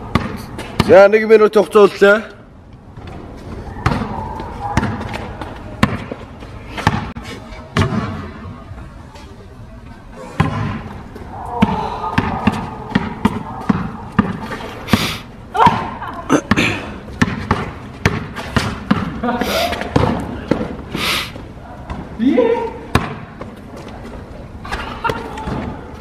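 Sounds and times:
basketball bouncing on hard court: 0.1s - 1.0s, 3.8s - 6.2s, 6.8s - 7.1s, 7.8s - 8.2s, 10.4s - 11.0s, 11.6s - 14.7s, 16.5s - 19.2s, 19.8s - 20.8s, 22.9s - 23.6s.

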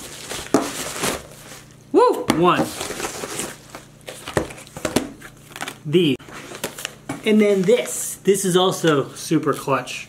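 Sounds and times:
packaging crinkling: 0.0s - 1.7s, 2.7s - 5.8s.

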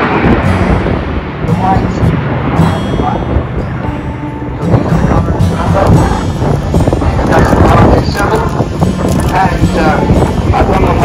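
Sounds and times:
indistinct voices talking: 0.0s - 11.0s
steady low rumble: 0.0s - 11.0s
wind buffeting microphone: 0.0s - 11.0s.

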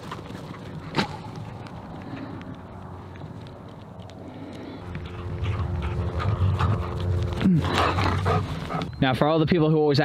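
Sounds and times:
rustle of movement: 0.0s - 9.0s.

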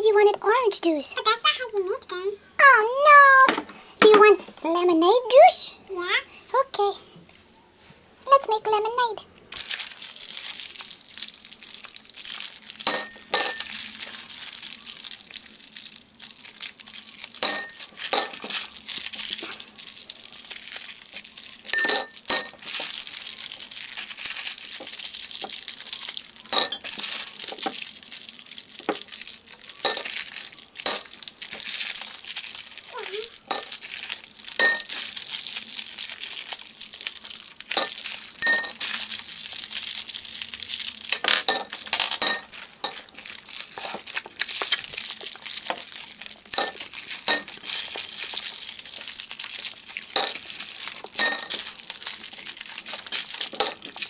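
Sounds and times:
cellophane wrappers crinkling: 9.5s - 54.0s
candies clinking into glasses: 9.6s - 54.0s.

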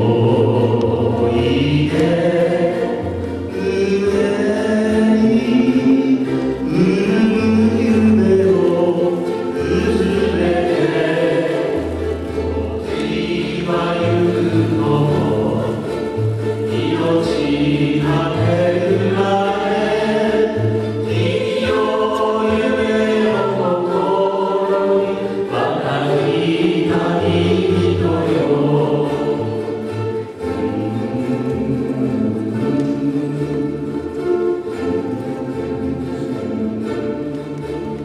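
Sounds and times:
voices singing together: 0.0s - 34.0s
ukulele ensemble playing ballad: 0.0s - 38.0s.

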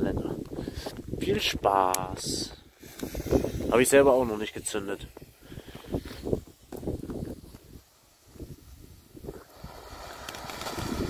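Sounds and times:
wind on microphone: 0.0s - 11.0s
firework fountain hissing: 1.8s - 11.0s.

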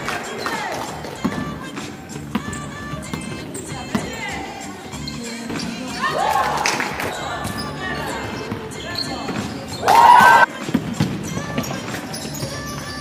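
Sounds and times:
basketball bouncing on court: 0.8s - 1.7s, 2.3s - 4.3s, 10.5s - 13.0s
people shouting: 6.0s - 7.4s, 9.7s - 10.5s.

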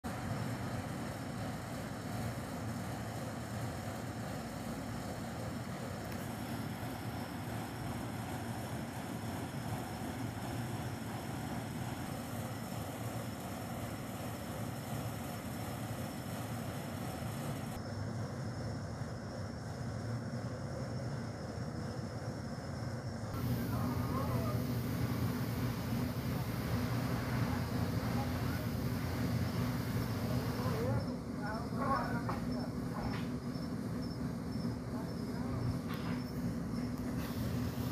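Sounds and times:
hiss: 0.0s - 18.4s, 23.2s - 31.2s, 31.8s - 37.9s.

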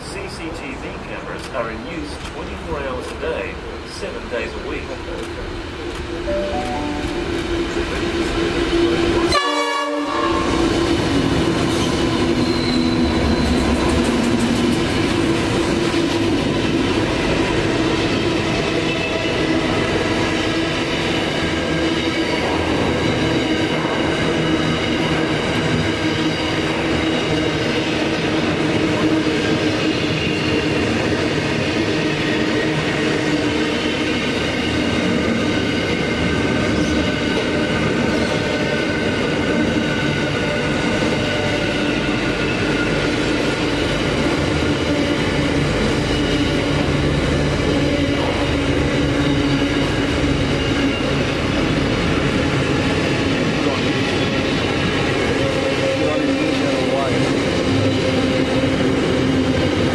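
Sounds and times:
diesel locomotives passing: 0.0s - 59.9s
wheels rumbling on rail: 7.3s - 59.9s.

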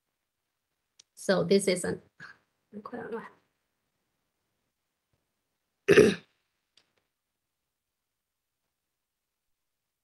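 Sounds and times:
woman clearing her throat: 5.9s - 6.3s.

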